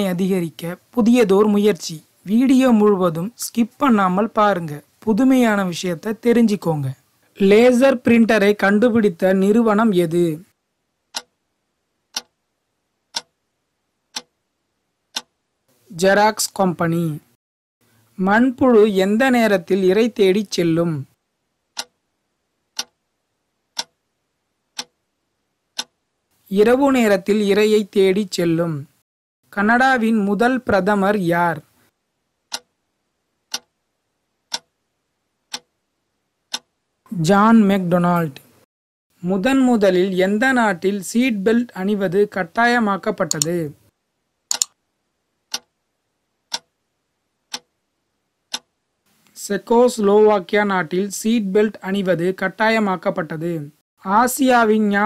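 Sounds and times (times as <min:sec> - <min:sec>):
clock ticks: 0:11.1 - 0:11.4, 0:12.1 - 0:12.4, 0:13.1 - 0:13.4, 0:14.1 - 0:14.4, 0:15.1 - 0:15.4, 0:21.8 - 0:22.0, 0:22.7 - 0:23.0, 0:23.8 - 0:24.0, 0:24.8 - 0:25.0, 0:25.8 - 0:26.0, 0:32.5 - 0:32.7, 0:33.5 - 0:33.8, 0:34.5 - 0:34.7, 0:35.5 - 0:35.8, 0:36.5 - 0:36.7, 0:44.5 - 0:44.8, 0:45.5 - 0:45.8, 0:46.5 - 0:46.8, 0:47.5 - 0:47.8, 0:48.5 - 0:48.7.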